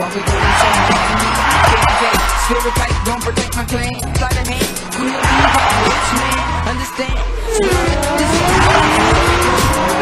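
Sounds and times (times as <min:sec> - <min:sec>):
car engine revving: 0:00.0 - 0:10.0
loud music: 0:00.0 - 0:10.0
tyres squealing: 0:00.0 - 0:10.0.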